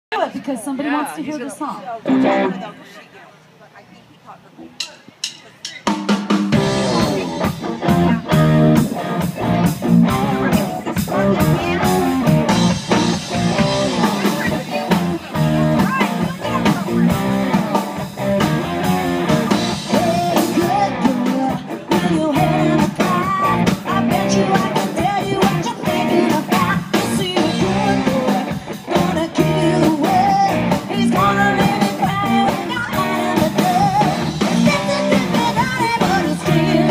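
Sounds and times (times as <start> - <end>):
electric guitars: 1.9 - 3.0, 5.8 - 36.9
drum kit: 4.7 - 36.9.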